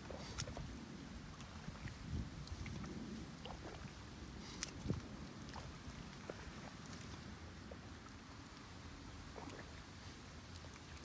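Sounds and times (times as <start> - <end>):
hoe working wet mud: 0.0 - 8.5
low outdoor noise: 0.0 - 11.0.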